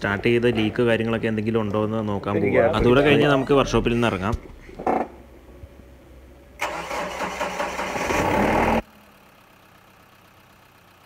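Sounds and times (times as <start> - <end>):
engine starter motor cranking: 6.6 - 8.8.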